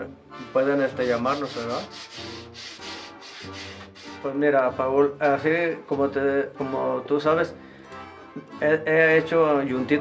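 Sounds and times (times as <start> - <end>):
sandpaper rubbing on wood: 0.9 - 4.2
soft guitar music: 2.9 - 10.0.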